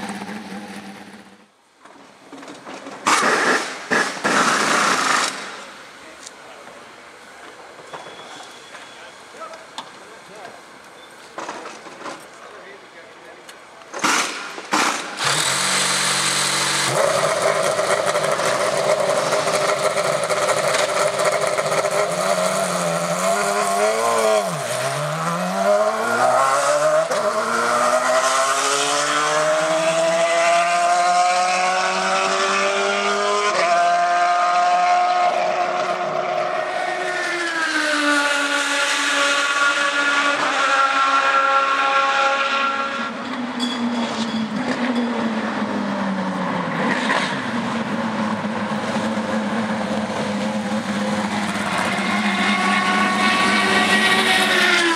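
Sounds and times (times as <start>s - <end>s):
race car engine accelerating: 15.2s - 43.3s, 44.0s - 54.9s.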